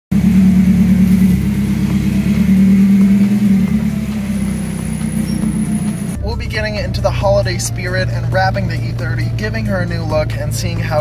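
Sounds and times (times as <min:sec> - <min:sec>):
car engine at low revs: 0:00.1 - 0:06.9.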